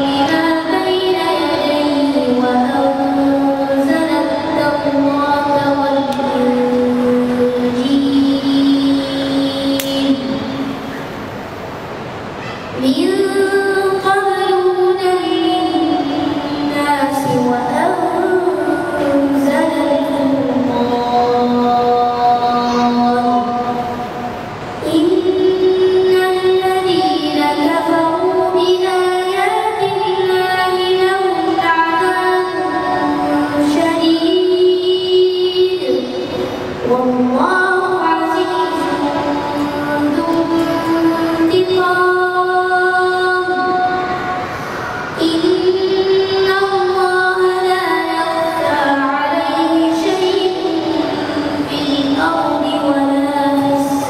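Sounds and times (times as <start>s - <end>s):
boy reciting melodically: 0.0s - 11.3s, 12.2s - 54.0s.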